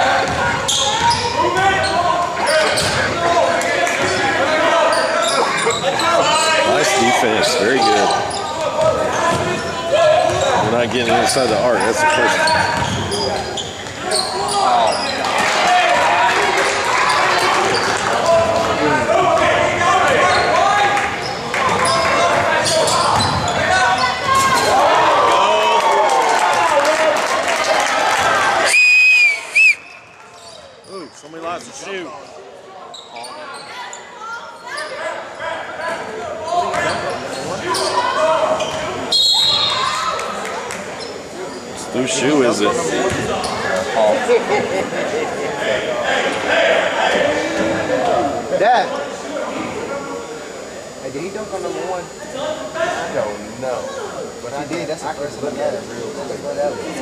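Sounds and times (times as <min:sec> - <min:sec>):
players and spectators shouting: 0:00.0 - 0:29.6, 0:33.1 - 0:40.6, 0:41.5 - 0:50.9
referee's whistle: 0:28.6 - 0:30.1, 0:39.1 - 0:40.0.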